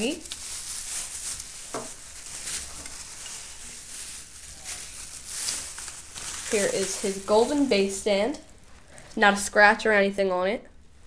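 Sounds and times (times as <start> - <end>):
plastic bags crinkling: 0.0 - 9.2.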